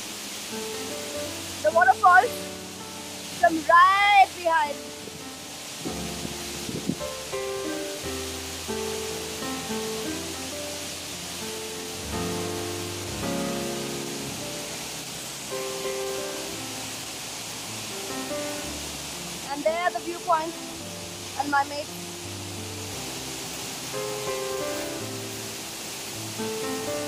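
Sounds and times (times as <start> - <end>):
slow held music notes: 0.0 - 27.0
waterfall rushing into a pool: 0.0 - 27.0
low bass line: 11.8 - 14.9.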